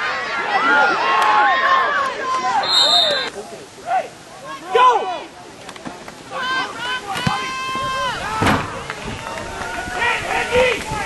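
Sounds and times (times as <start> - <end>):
voices calling and shouting: 0.0 - 11.0.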